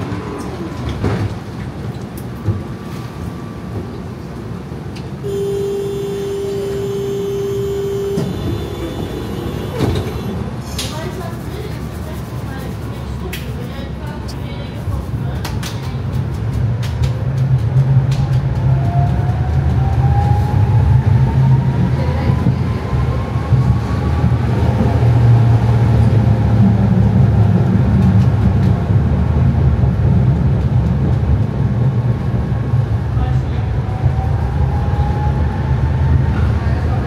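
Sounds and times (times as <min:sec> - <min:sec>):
tram running gear rumble: 0:00.0 - 0:37.0.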